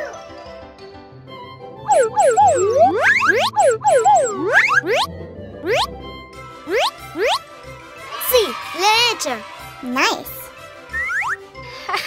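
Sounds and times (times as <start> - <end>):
children's background music: 0.0 - 12.0
rising whistle sweeps: 1.9 - 5.0
warbling cartoon tones: 1.9 - 5.9, 6.7 - 7.4.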